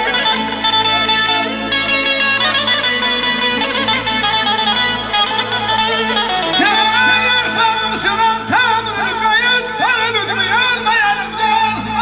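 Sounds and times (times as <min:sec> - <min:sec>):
accordion melody: 0:00.0 - 0:12.0
band music: 0:00.0 - 0:12.0
man singing amplified: 0:05.6 - 0:12.0.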